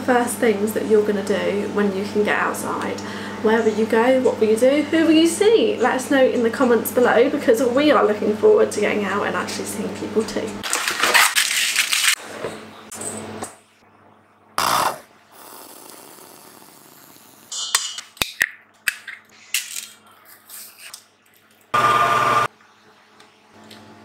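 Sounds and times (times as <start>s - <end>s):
kitchen clatter: 10.6s - 12.2s.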